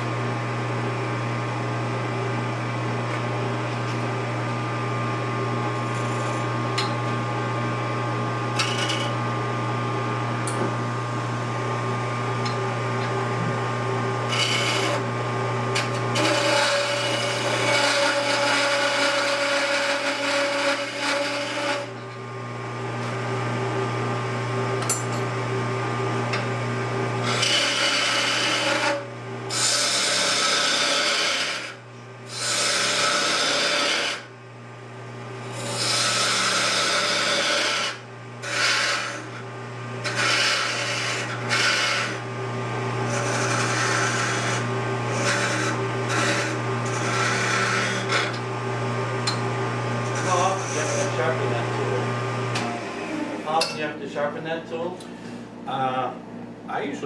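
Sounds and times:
wood lathe humming: 0.0s - 34.4s, 35.1s - 56.1s
turning tool cutting spinning wood: 3.5s - 10.6s, 12.1s - 25.3s, 26.3s - 34.3s, 35.4s - 53.9s.

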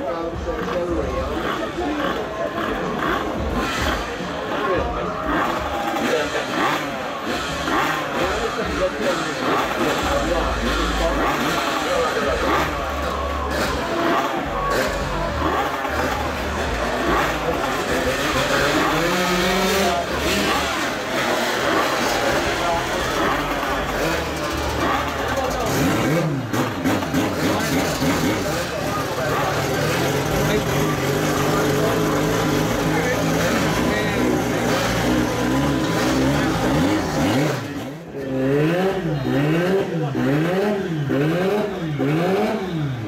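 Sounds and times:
motorcycle engines idling and revving: 0.0s - 43.0s.

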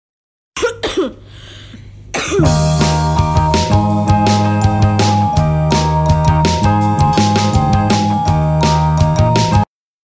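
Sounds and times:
throaty vocal bursts: 0.8s - 2.9s.

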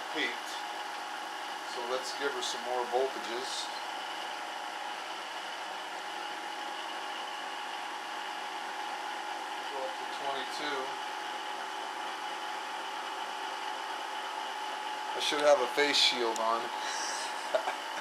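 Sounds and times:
electric motor humming: 10.8s - 18.0s.

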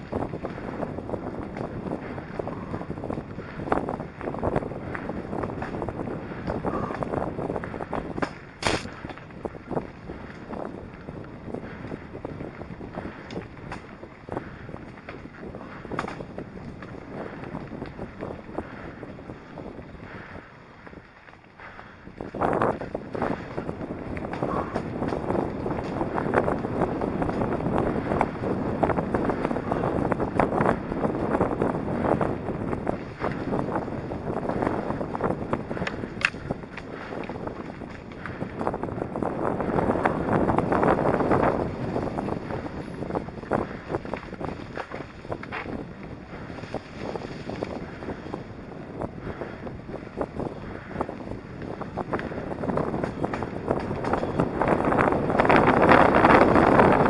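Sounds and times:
bike clattering over bumps: 0.0s - 57.0s
bike tyre noise: 0.0s - 57.0s
wind buffeting microphone: 0.0s - 57.0s.

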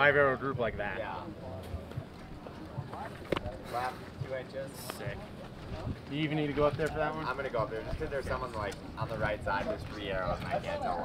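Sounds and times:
faint distant voices: 0.0s - 11.0s.

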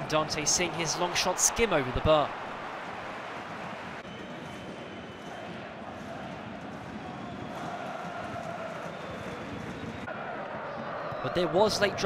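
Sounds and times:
stadium crowd voices: 0.0s - 12.0s.

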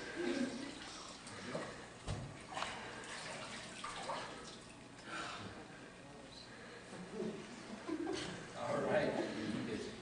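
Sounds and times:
water splashing and dripping: 2.5s - 5.0s.

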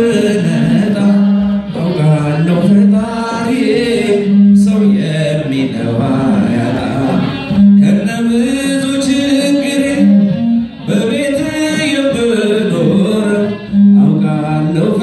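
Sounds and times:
man singing through microphone: 0.0s - 15.0s.

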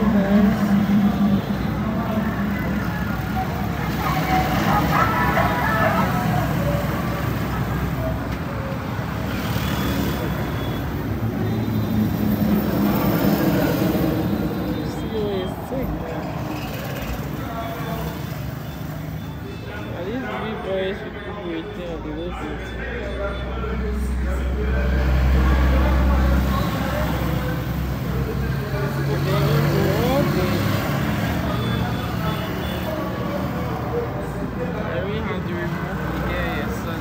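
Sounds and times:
voices talking: 0.0s - 37.0s.

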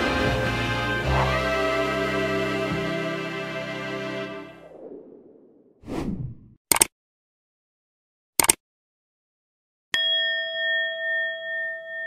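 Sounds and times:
notification bell ding: 10.0s - 12.0s.

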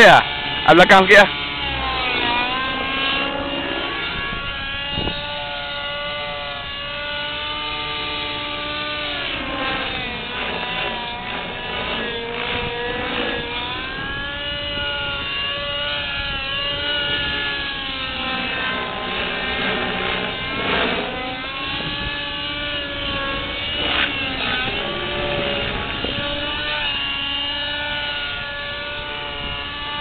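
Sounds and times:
model helicopter motor whine: 0.0s - 30.0s.

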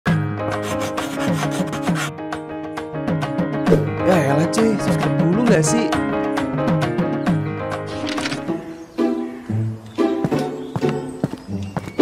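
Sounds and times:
chalk scratching on blackboard: 0.6s - 2.1s.

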